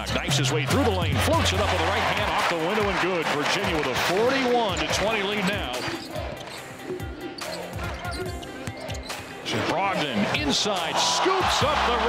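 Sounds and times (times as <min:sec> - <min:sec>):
arena noise: 0:00.0 - 0:12.0
music: 0:00.0 - 0:12.0.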